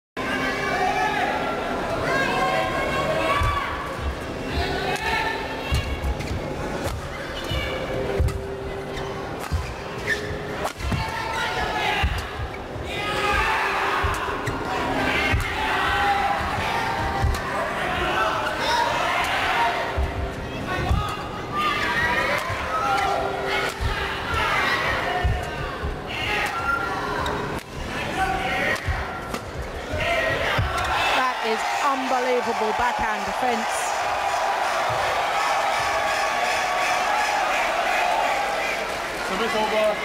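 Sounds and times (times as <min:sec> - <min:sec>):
crowd chanting and shouting: 0:00.2 - 0:40.0.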